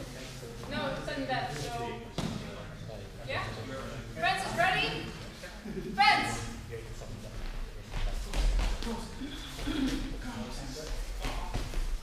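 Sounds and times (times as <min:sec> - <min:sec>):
footsteps on sports hall floor: 0:07.3 - 0:12.0.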